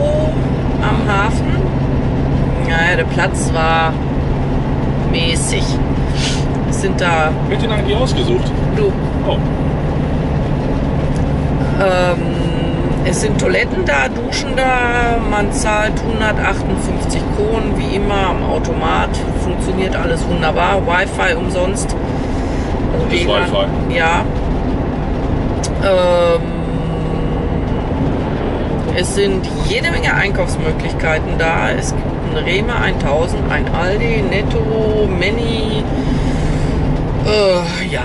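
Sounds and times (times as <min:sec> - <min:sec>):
engine and road drone: 0:00.0 - 0:38.0.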